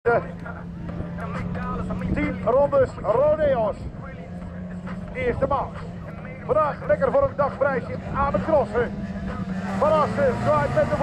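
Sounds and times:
car engines droning: 0.1s - 11.0s
voices: 0.1s - 11.0s.

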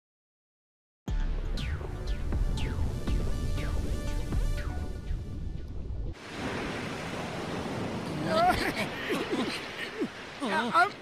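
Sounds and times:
music: 1.1s - 6.2s
ocean surf breaking on beach: 6.2s - 11.0s.

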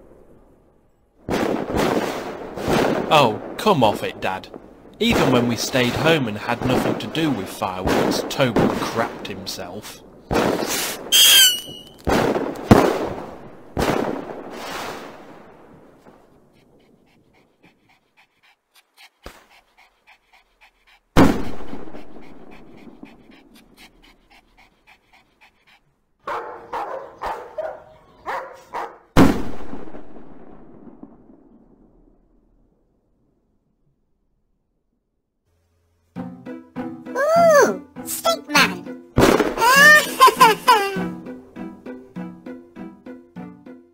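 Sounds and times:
fireworks bangs: 0.0s - 17.3s, 21.2s - 24.0s, 29.2s - 32.5s, 38.2s - 41.0s
firework crackling: 1.3s - 6.0s, 10.3s - 17.7s
firework whistle: 10.6s - 12.1s
short yelping cries: 11.2s - 11.9s, 37.2s - 38.8s, 39.6s - 41.1s.

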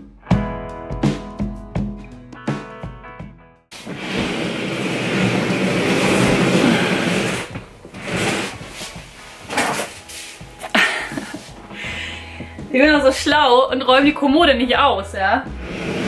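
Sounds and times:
chest of drawers scraping floor: 3.7s - 11.6s, 15.5s - 16.0s.

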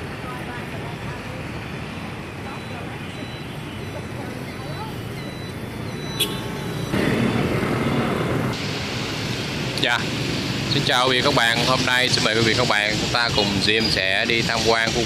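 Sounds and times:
faint voices: 0.0s - 5.6s
road traffic: 0.0s - 15.0s.

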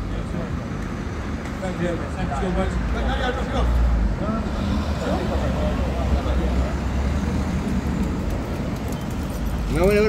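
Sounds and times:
low street rumble: 0.0s - 10.0s
indistinct voices talking: 1.5s - 10.0s.

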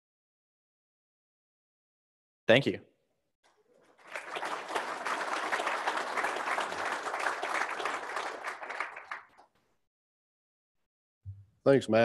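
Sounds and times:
audience applauding: 3.5s - 9.6s.

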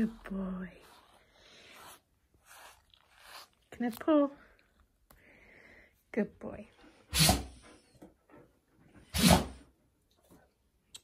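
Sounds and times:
dog sneezing: 7.1s - 7.6s, 9.1s - 9.6s.

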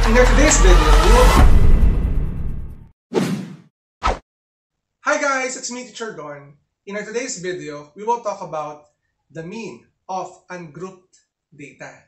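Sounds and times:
sharp whack: 3.1s - 4.2s.

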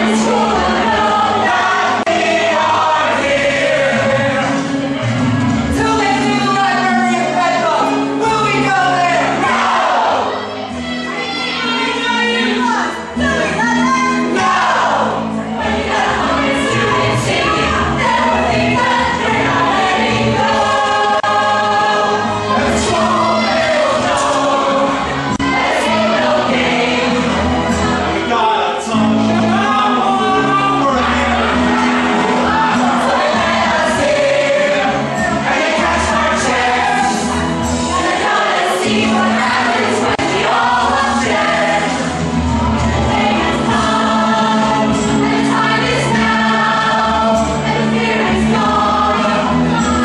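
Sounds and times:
chorus singing a show tune: 0.0s - 50.0s.

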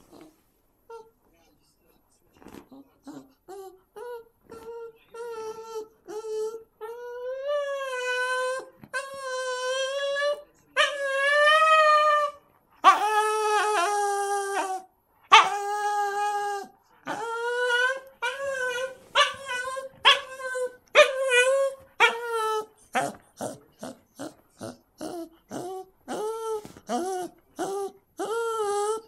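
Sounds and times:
dog whining: 0.0s - 1.2s, 2.7s - 29.0s.

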